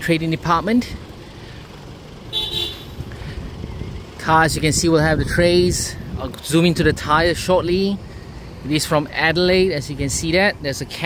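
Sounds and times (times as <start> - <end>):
diesel engine idling: 0.0 - 11.0
high-pitched horn toot: 2.3 - 3.0.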